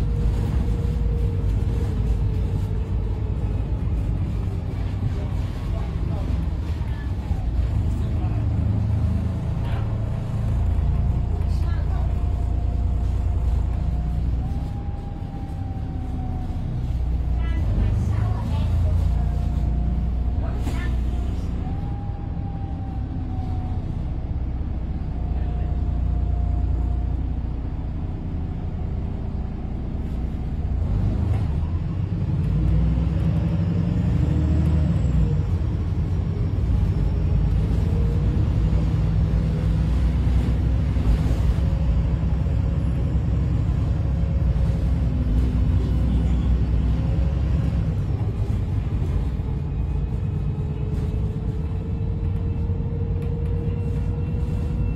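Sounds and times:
bus engine and road drone: 0.0s - 54.9s.

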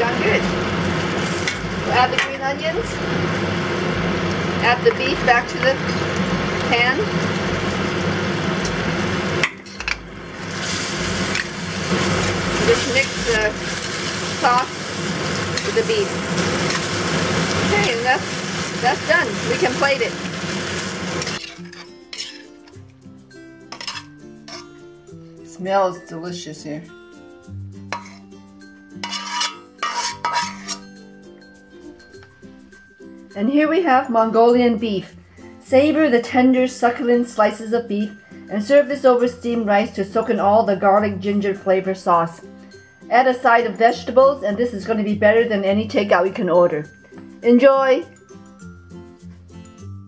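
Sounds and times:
meat sizzling in a wok: 0.0s - 22.8s, 27.5s - 28.4s, 29.0s - 30.8s
soft background music: 0.0s - 50.0s
spatula scraping: 21.1s - 22.8s, 23.7s - 24.8s, 27.9s - 28.4s, 29.0s - 31.0s.

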